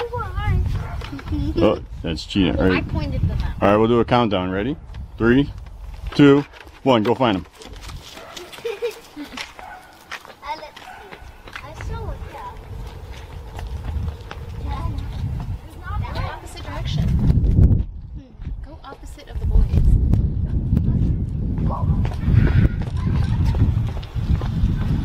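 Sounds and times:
footsteps: 0.0s - 1.7s, 4.8s - 25.0s
microphone buffeting rumble: 0.0s - 6.8s, 11.3s - 25.0s.

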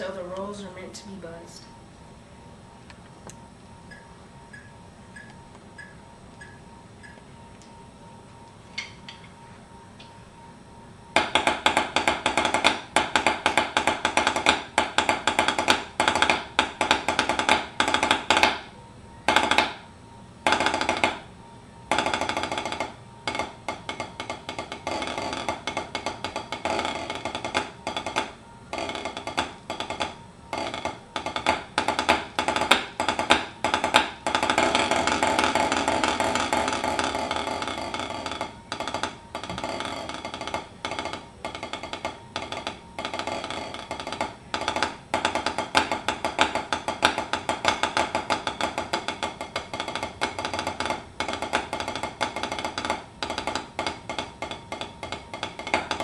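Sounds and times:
drumsticks on practice pad: 11.2s - 21.3s, 21.9s - 56.0s.

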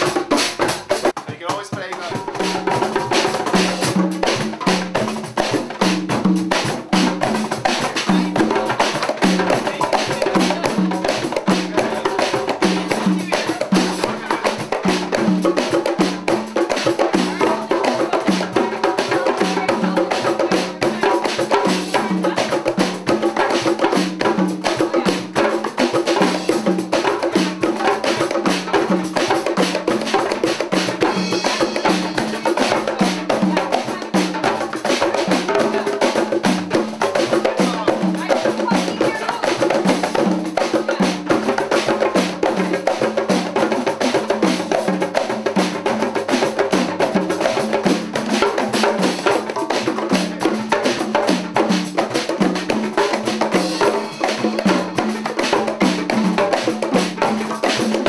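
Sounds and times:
hand drums and drum kit groove: 0.0s - 58.0s.

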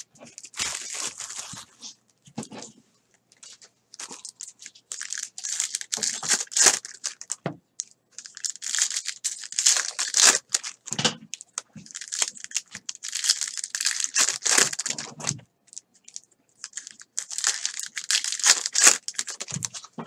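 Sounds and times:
wrappers tearing and crinkling: 0.0s - 2.0s, 3.4s - 20.0s.

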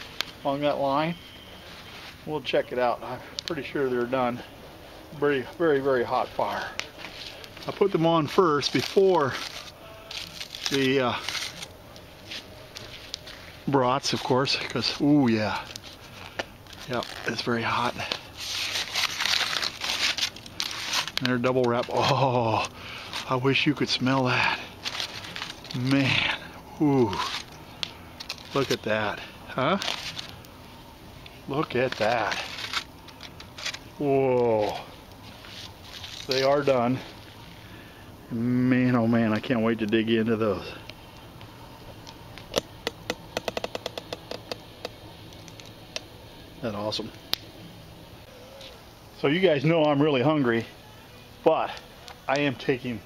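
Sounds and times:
campfire crackling: 0.0s - 53.0s
aluminium foil crinkling: 4.4s - 37.9s, 38.8s - 47.5s.

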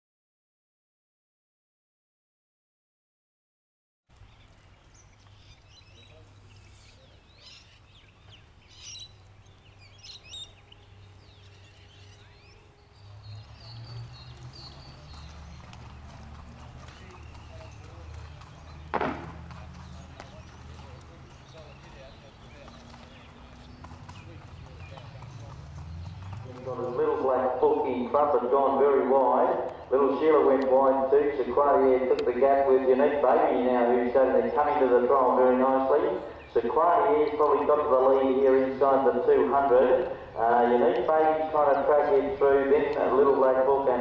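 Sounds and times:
faint distant voices: 4.7s - 9.8s, 10.4s - 44.0s
sharp knock: 18.9s - 19.4s.

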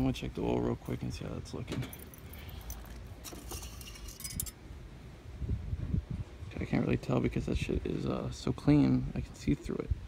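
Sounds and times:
metal dipstick clinking in tube: 1.9s - 4.6s.

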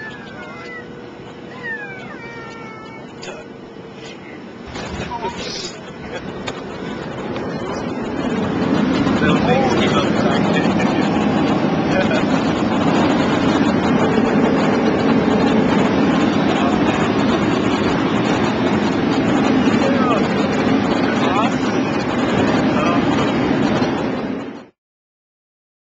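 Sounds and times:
jet engines roaring: 0.0s - 24.8s.

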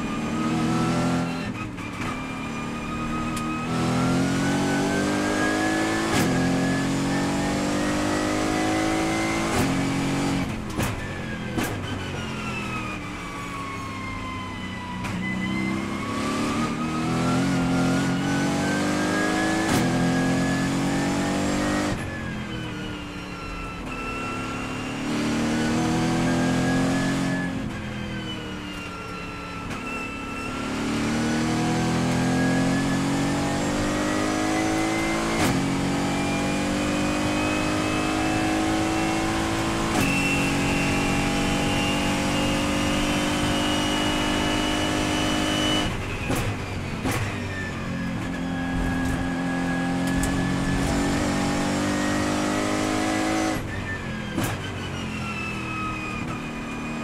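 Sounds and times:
race car engine accelerating: 0.0s - 13.0s, 14.3s - 22.5s, 23.9s - 28.8s, 29.9s - 56.9s.

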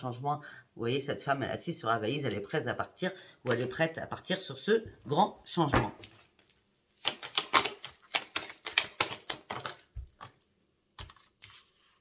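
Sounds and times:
cards being shuffled: 7.0s - 12.0s.

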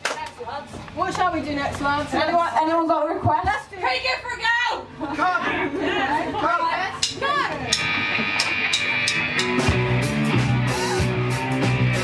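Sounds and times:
punk rock band playing: 7.0s - 12.0s.

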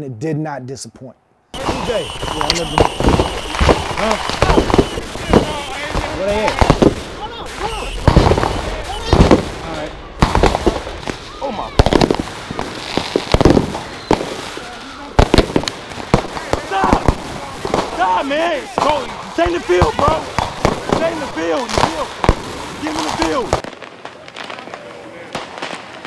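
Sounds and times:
voices shouting: 1.6s - 23.6s
fireworks bangs and pops: 1.6s - 26.0s
fireworks crackling: 1.6s - 26.0s.

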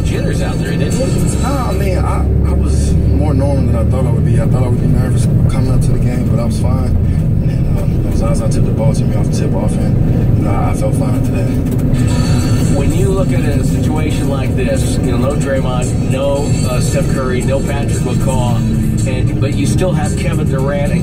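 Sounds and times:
car road and engine rumble: 0.0s - 21.0s.

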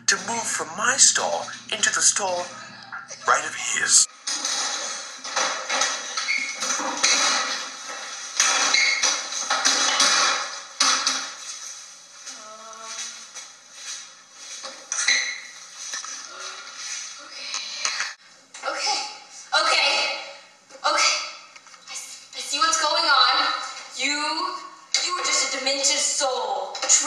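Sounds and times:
clothes rustling: 4.1s - 17.5s.

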